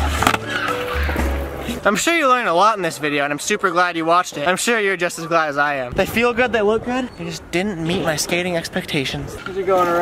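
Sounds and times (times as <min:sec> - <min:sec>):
skateboard clacks on concrete: 0:00.0 - 0:01.4.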